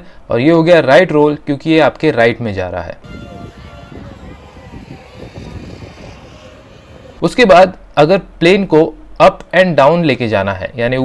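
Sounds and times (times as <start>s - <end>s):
wind noise on microphone: 3.0s - 7.6s.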